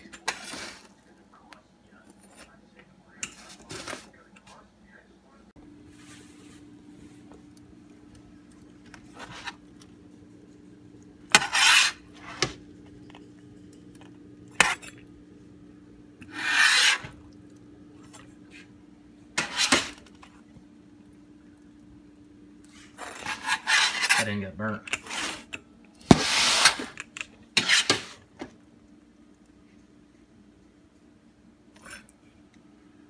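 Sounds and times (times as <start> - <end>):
steady low hum: 0.0 - 33.0
pizza cutter rasping through crust: 11.3 - 12.6, 16.2 - 17.2, 19.4 - 20.1, 22.7 - 24.4, 25.0 - 27.0, 27.6 - 28.2.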